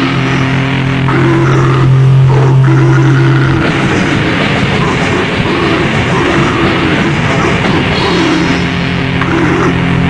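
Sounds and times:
distorted metal guitar and bass: 0.0s - 10.0s.

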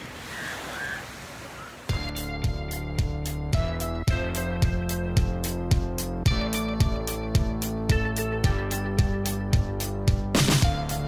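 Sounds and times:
surf against rocky shore: 0.0s - 2.0s
music: 1.9s - 11.0s.

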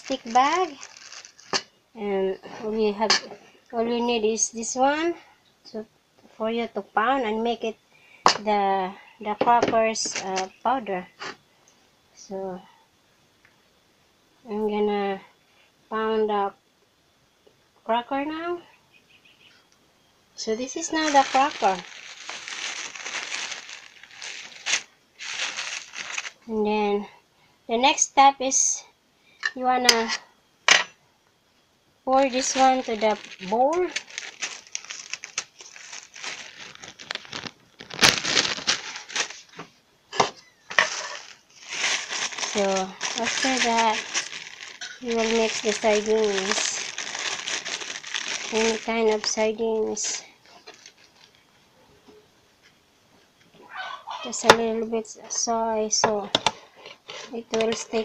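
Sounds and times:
plastic bag crinkling: 0.0s - 1.7s, 20.4s - 26.5s, 32.1s - 39.7s, 40.4s - 51.4s.

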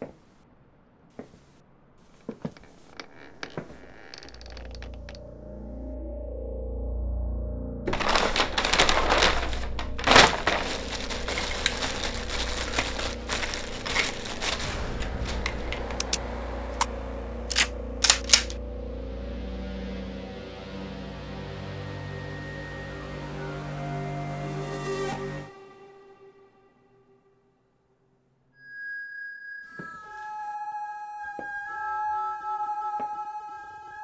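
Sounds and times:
plastic bag crinkling: 2.3s - 5.2s, 7.9s - 16.2s
ominous film score drone: 5.2s - 7.9s, 14.6s - 25.5s.

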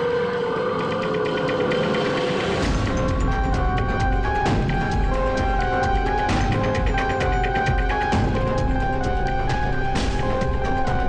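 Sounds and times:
suspenseful score sustained tones: 0.0s - 11.0s.

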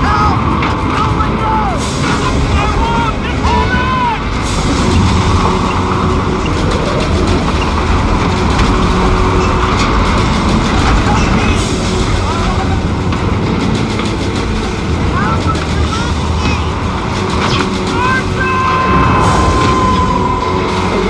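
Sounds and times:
tornado wind rushing: 0.0s - 21.0s.

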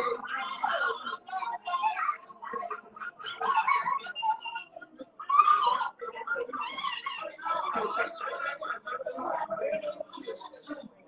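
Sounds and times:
people talking in a small room: 0.0s - 11.0s.

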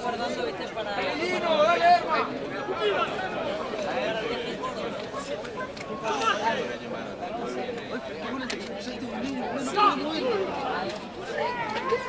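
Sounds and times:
voices talking and calling out: 0.0s - 12.0s.

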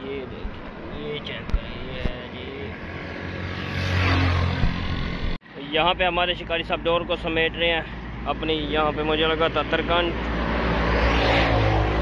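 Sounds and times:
road vehicle passing: 0.0s - 5.4s, 6.3s - 12.0s.

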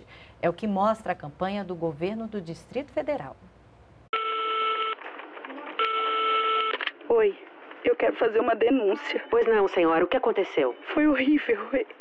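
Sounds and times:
telephone ringing tone: 4.1s - 5.0s, 5.8s - 6.9s.

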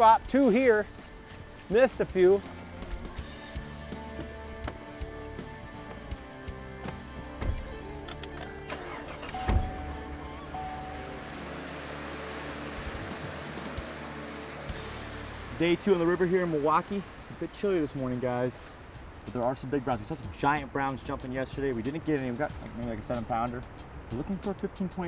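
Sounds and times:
background music: 0.0s - 25.0s
vehicle engine running: 2.3s - 16.8s.

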